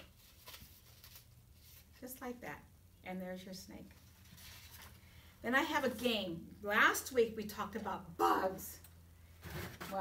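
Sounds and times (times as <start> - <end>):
paper rustling: 0.0 - 2.0, 4.1 - 5.0.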